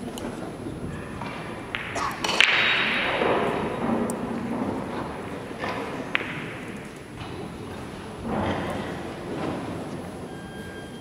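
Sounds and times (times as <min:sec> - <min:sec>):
sharp knocks in echoing hall: 0:00.8 - 0:10.0.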